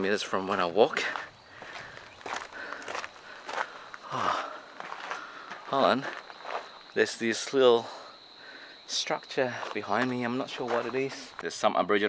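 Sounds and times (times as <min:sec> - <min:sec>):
footsteps on rocky dirt trail: 0:00.0 - 0:08.0, 0:09.3 - 0:11.6.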